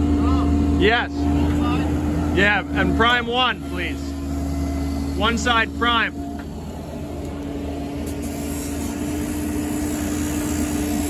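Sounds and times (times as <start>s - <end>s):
excavator engine rumbling: 0.0s - 11.0s.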